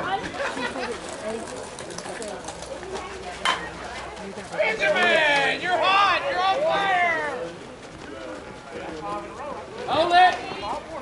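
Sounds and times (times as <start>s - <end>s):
voices from the field: 0.0s - 11.0s.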